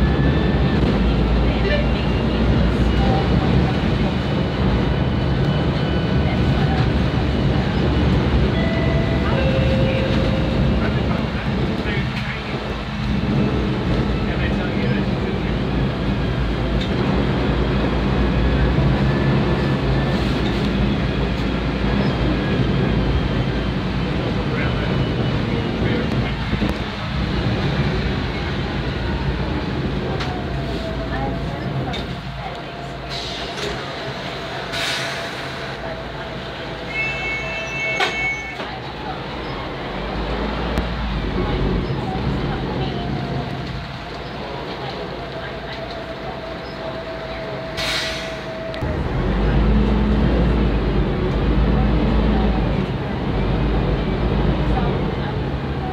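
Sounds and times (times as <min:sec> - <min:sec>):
bus diesel engine running: 0:00.0 - 0:55.9
short beeping tone: 0:36.9 - 0:38.6.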